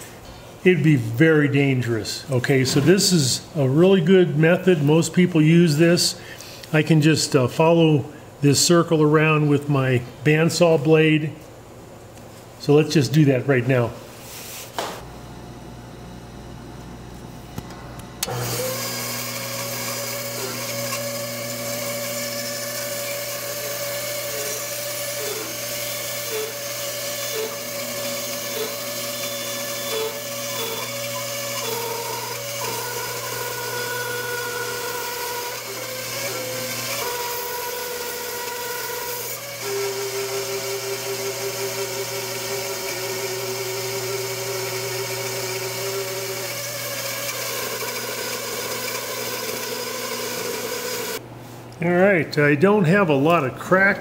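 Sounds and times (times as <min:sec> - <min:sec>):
bandsaw cutting wood: 0:18.2 - 0:51.2.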